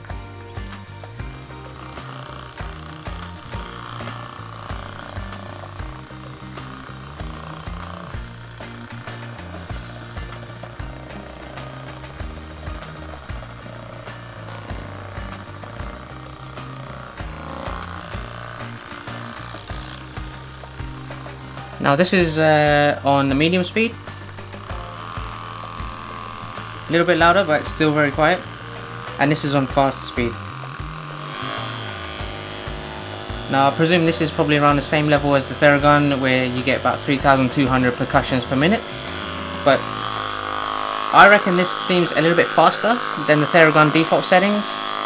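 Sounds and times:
background music: 0:00.0 - 0:45.0
massage gun running: 0:00.0 - 0:45.0.

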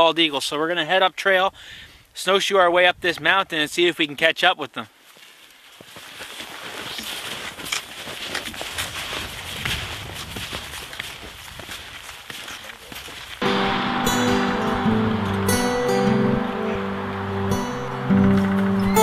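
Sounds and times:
snowshoes crunching through snow: 0:05.0 - 0:13.4
music with held notes: 0:13.4 - 0:19.0.

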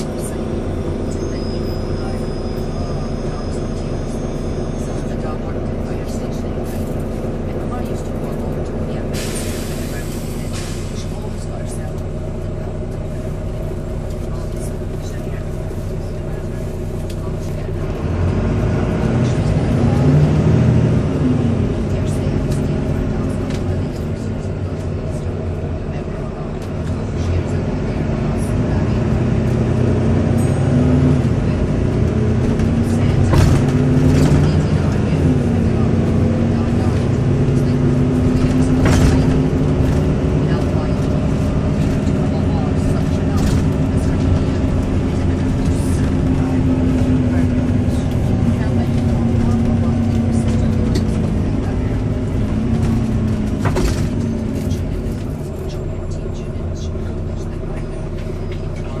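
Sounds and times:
bus diesel engine running: 0:00.0 - 0:59.0.

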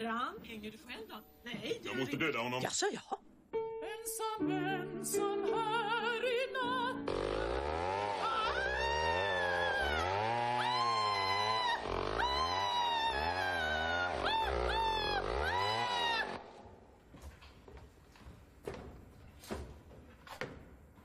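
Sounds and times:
man wailing: 0:08.1 - 0:16.4.

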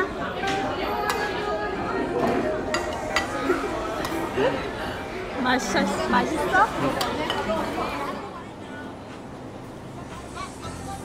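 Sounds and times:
voices chattering: 0:00.0 - 0:11.0.

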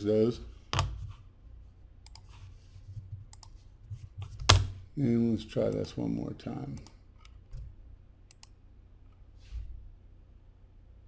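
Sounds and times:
low steady hum: 0:00.0 - 0:11.0
computer mouse clicking: 0:02.0 - 0:02.3, 0:03.3 - 0:03.6, 0:08.3 - 0:08.6.

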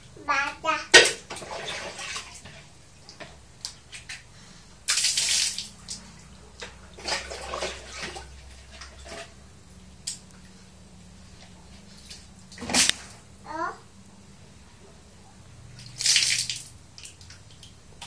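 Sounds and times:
water splashing on tiled floor: 0:04.8 - 0:09.3, 0:15.8 - 0:18.0.

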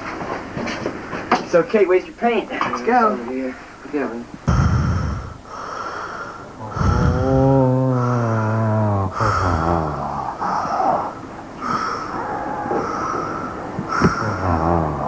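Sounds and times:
man's wordless vocal sounds: 0:04.4 - 0:05.5, 0:06.5 - 0:11.2, 0:13.8 - 0:15.0.

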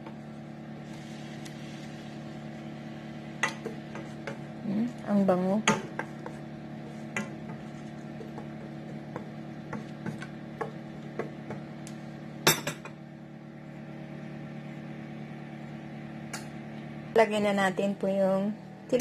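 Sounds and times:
steady low hum: 0:00.0 - 0:19.0
wooden spoon stirring in a skillet: 0:00.1 - 0:05.2, 0:05.8 - 0:11.7.

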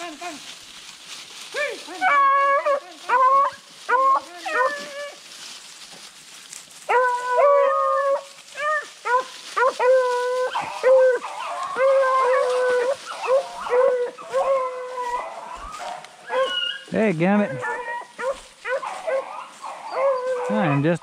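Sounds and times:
beagles baying: 0:01.5 - 0:05.3, 0:06.8 - 0:21.0.

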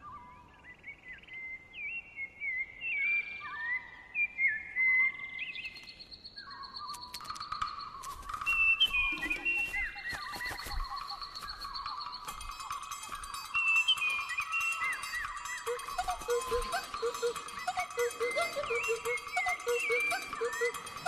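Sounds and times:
bird chirps and whistles: 0:04.4 - 0:21.0
clicking percussion music: 0:10.5 - 0:21.0
steady high tone: 0:12.4 - 0:21.0.

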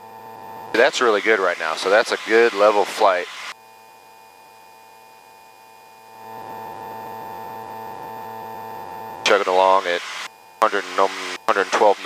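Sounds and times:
aircraft cabin drone: 0:00.4 - 0:03.5, 0:08.8 - 0:12.0.

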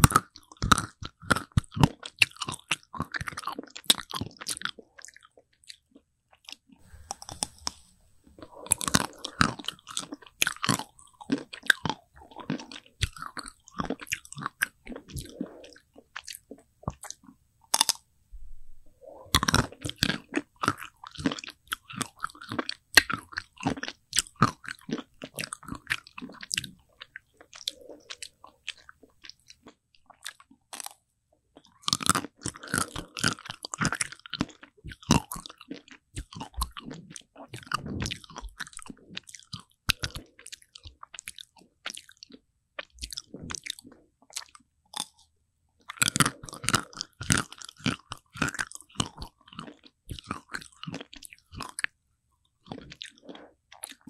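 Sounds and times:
crunching and chewing ice cream: 0:00.0 - 0:18.0, 0:19.0 - 0:54.0.

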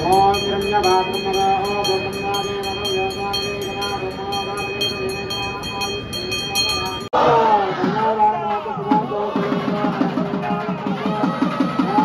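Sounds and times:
bell rung rapidly: 0:00.0 - 0:07.2
person chanting: 0:00.0 - 0:12.0.

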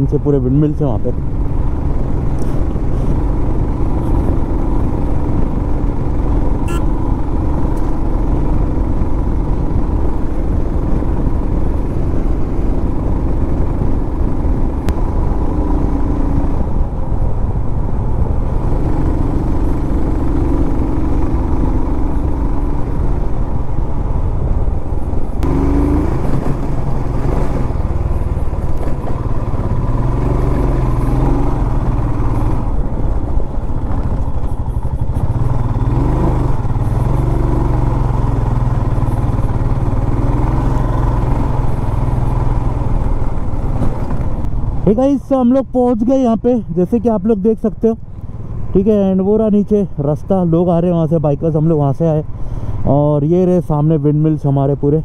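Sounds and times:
motorcycle engine under load: 0:00.0 - 0:44.6.

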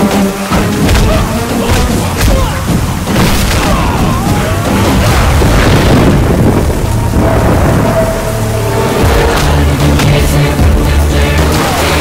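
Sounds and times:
dramatic background score: 0:00.0 - 0:12.0
heavy rain: 0:00.0 - 0:12.0.

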